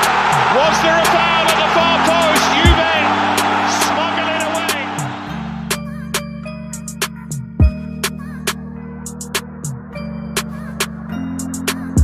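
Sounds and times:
stadium crowd noise: 0:00.0 - 0:05.7.

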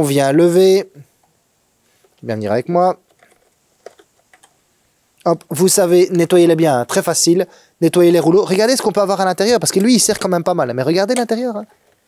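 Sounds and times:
faint plastic clicks and ticks: 0:11.1 - 0:12.0.

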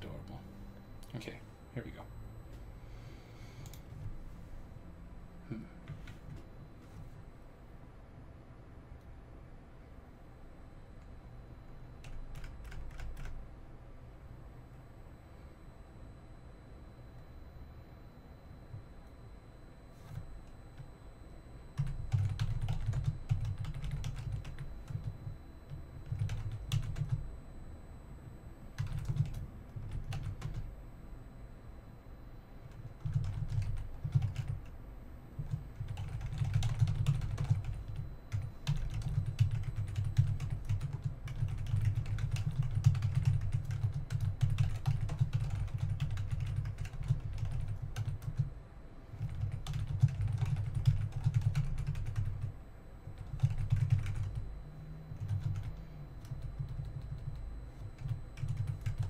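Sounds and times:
typing on computer keyboard: 0:12.0 - 0:13.4, 0:21.8 - 0:25.1, 0:26.0 - 0:27.2, 0:28.8 - 0:30.7, 0:32.8 - 0:34.7, 0:35.4 - 0:48.5, 0:49.2 - 0:52.5, 0:53.2 - 0:54.4, 0:55.2 - 0:59.0.

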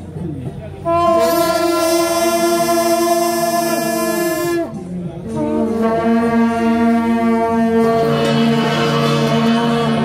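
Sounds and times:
long brass horns sustained note: 0:00.8 - 0:10.0.

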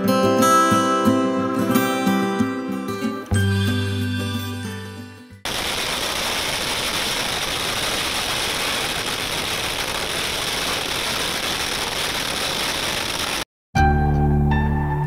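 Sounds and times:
acoustic guitar music: 0:00.0 - 0:05.4
firecrackers crackling: 0:05.5 - 0:13.5.

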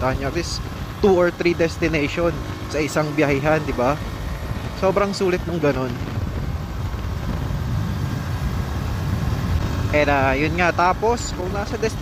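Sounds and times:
motorcycle engine rumble: 0:00.0 - 0:12.0
road noise: 0:00.0 - 0:12.0.

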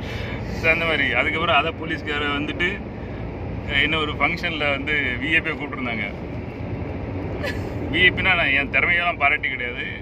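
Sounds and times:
car interior road rumble: 0:00.0 - 0:10.0
man talking: 0:00.5 - 0:02.8, 0:03.6 - 0:06.2, 0:07.9 - 0:10.0.

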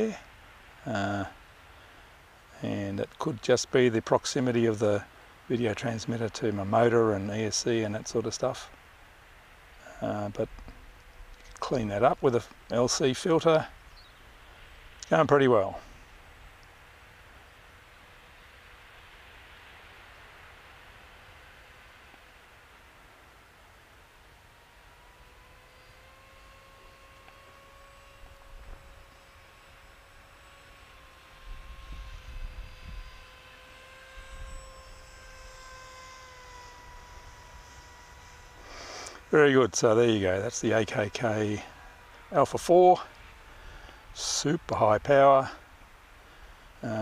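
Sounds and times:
distant electric motor whine: 0:00.0 - 0:47.0.

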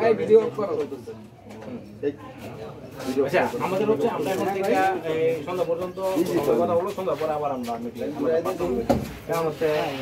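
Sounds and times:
group of people talking: 0:00.0 - 0:10.0.

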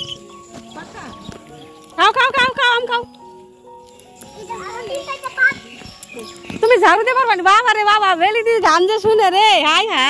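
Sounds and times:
faint background music: 0:00.0 - 0:10.0
young children chattering: 0:04.2 - 0:07.1.

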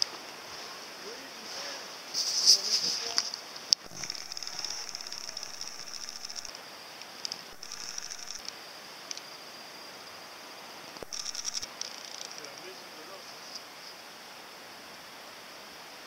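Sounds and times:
sharp click: 0:03.2 - 0:06.5
camcorder zoom motor whirring: 0:03.8 - 0:06.5, 0:07.5 - 0:08.5, 0:11.0 - 0:11.7.

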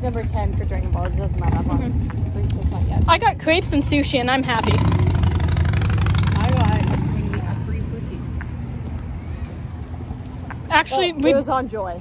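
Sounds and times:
passing motor vehicle rumble: 0:00.0 - 0:12.0.

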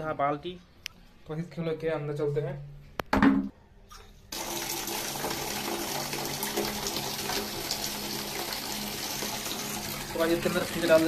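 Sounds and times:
water running into a bucket: 0:04.3 - 0:11.0.

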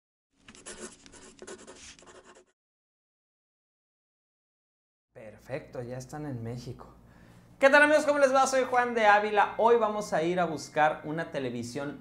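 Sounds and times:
pen scratching on paper: 0:00.4 - 0:02.6.

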